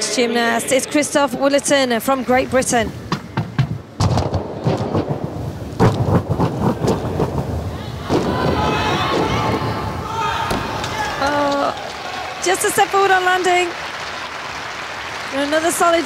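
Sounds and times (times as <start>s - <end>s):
deep thuds on tumbling track: 2.6s - 9.8s
crowd cheering and shouting: 7.7s - 13.8s.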